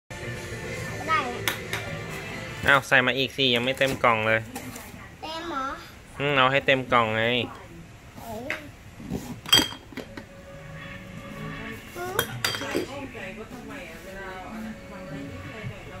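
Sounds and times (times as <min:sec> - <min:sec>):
glass bottles clinking: 0:09.5 - 0:10.2.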